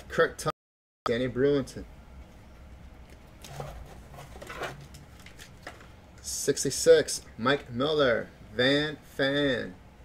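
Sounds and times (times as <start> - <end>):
low room hum: 1.1 - 10.0.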